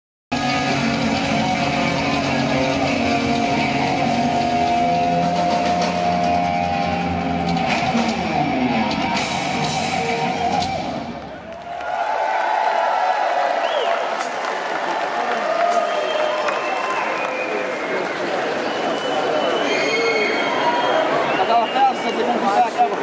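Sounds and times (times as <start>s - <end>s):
live hard rock band: 0.3s - 11.1s
crowd cheering: 0.4s - 23.0s.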